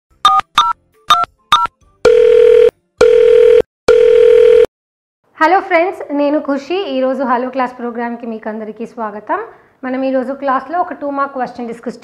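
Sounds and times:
buzzy telephone beeps: 0:00.2 - 0:04.7.

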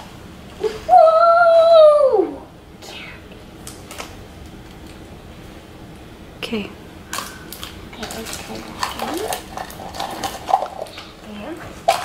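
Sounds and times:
plastic clicks and crinkles: 0:07.1 - 0:11.1.

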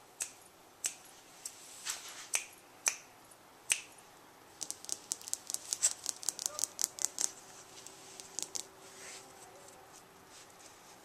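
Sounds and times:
fingers snapping: 0:00.2 - 0:01.0, 0:02.3 - 0:03.1, 0:03.7 - 0:04.0, 0:04.6 - 0:08.7.

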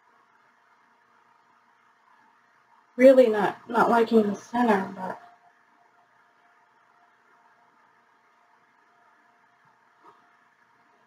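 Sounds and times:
faint steady hum: 0:00.0 - 0:11.0
woman speaking: 0:03.0 - 0:05.3.

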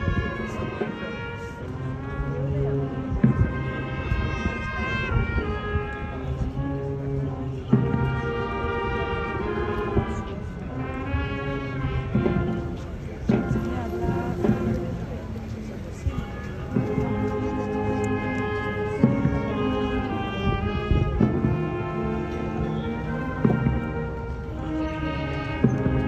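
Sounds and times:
brass band playing solemn march: 0:00.0 - 0:26.0
drum strokes: 0:12.0 - 0:15.2.

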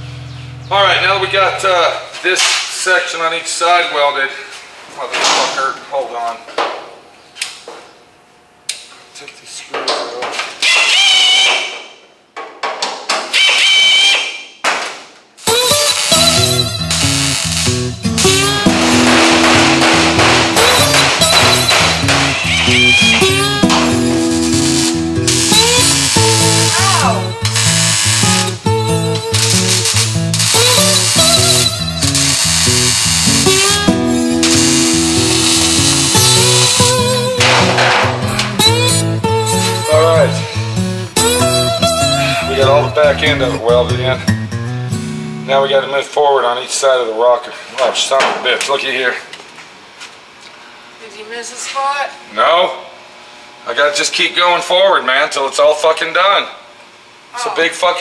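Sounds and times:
welding bursts: 0:15.4 - 0:43.6
music with guitar and steady beat: 0:15.5 - 0:45.5.

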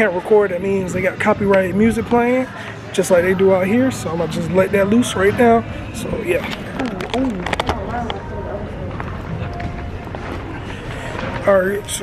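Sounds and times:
faint voices: 0:00.0 - 0:12.0
low street rumble: 0:00.0 - 0:12.0.

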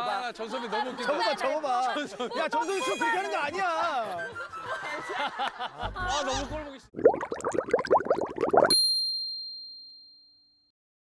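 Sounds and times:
laughter: 0:00.4 - 0:06.7.

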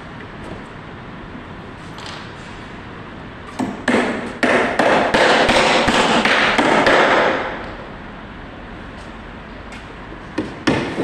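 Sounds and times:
hammer driving nails into wood: 0:03.6 - 0:07.5.

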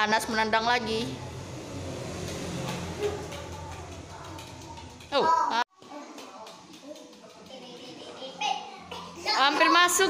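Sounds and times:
ball rolling on tiled floor: 0:01.4 - 0:08.3.

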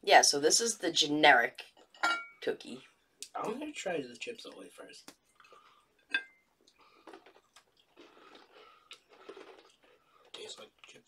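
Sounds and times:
chewing crunchy cookies: 0:06.6 - 0:11.0.

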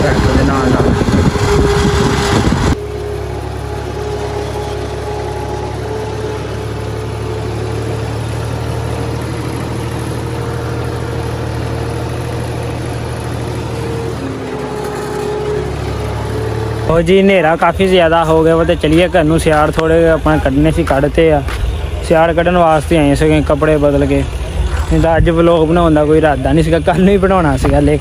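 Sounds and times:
loud rough noise: 0:00.0 - 0:28.0
tractor diesel engine droning: 0:00.0 - 0:28.0.

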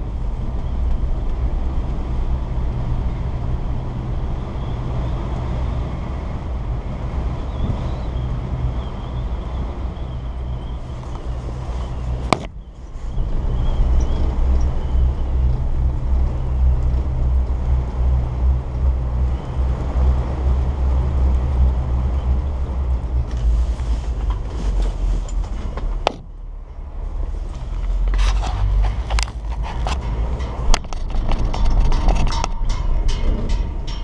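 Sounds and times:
wind and chairlift rumble: 0:00.0 - 0:34.0
chairlift rollers clicking and clattering: 0:27.5 - 0:34.0.

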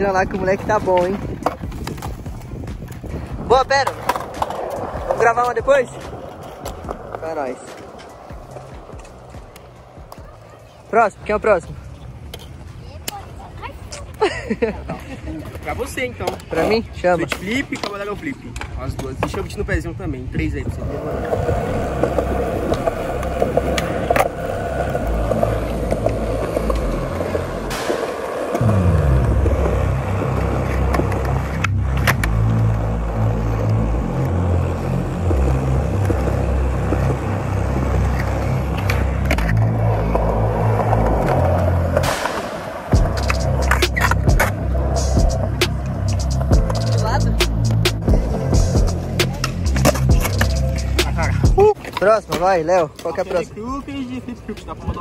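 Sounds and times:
skateboard rolling on concrete: 0:00.0 - 0:55.0
music with heavy bass line: 0:28.6 - 0:42.3, 0:42.9 - 0:51.7.

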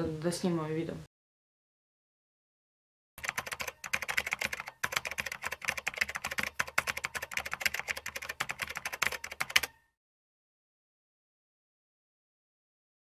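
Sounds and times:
fast typing on computer keyboard: 0:03.2 - 0:09.8.

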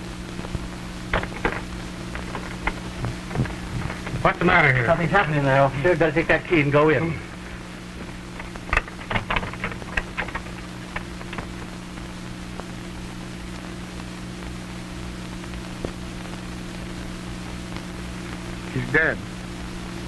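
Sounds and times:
film soundtrack hum and hiss: 0:00.0 - 0:20.0
light clicks and knocks: 0:01.1 - 0:04.3, 0:08.0 - 0:11.7.

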